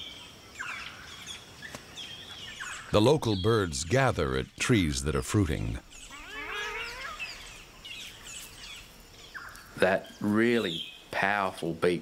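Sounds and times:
small birds chirping: 0:00.0 - 0:12.0
bird call rising in pitch: 0:06.0 - 0:07.6.

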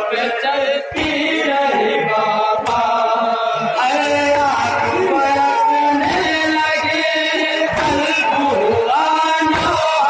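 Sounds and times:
men chanting a lament: 0:00.0 - 0:10.0.

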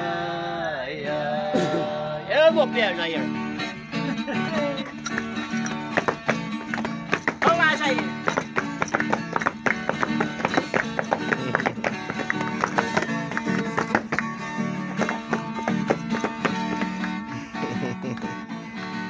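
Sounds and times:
guitar strummed and picked: 0:01.0 - 0:19.0.

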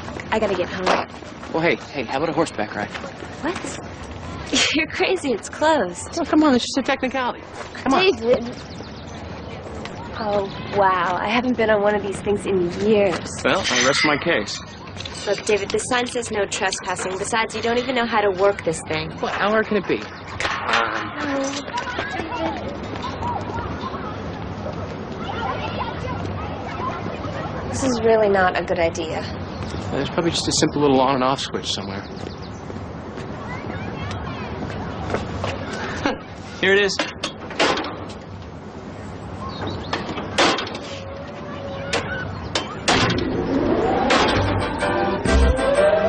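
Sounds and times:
outdoor background noise: 0:00.0 - 0:46.0
carousel music: 0:41.1 - 0:46.0
carousel running with rising tone: 0:41.8 - 0:46.0.

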